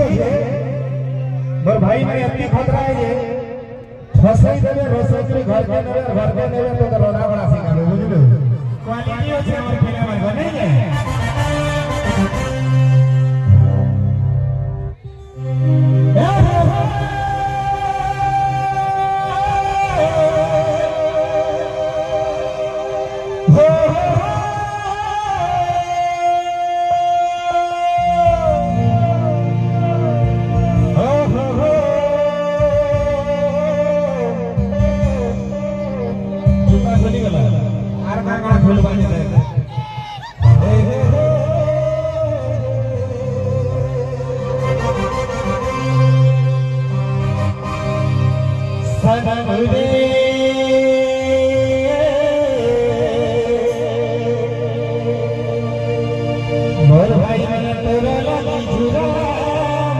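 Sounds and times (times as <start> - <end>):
stage band music over loudspeakers: 0.0 - 59.9.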